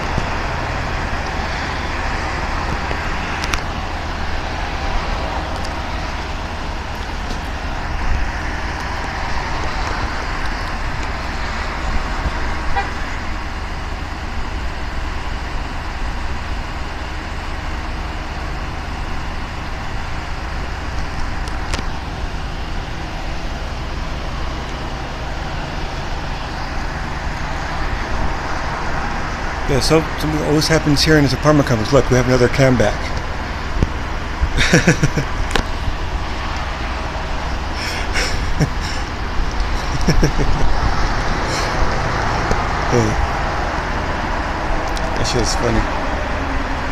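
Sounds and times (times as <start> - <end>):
idling vehicles and traffic rumble: 0.0 - 46.9.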